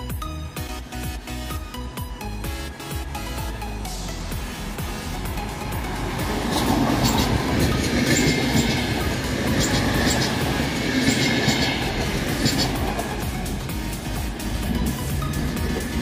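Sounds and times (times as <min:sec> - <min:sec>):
train rumble: 0:00.1 - 0:16.0
train wheels clicking over rail joints: 0:04.8 - 0:16.0.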